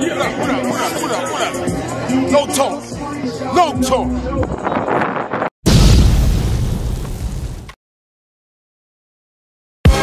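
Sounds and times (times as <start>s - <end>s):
deep explosion boom: 5.7s - 7.8s.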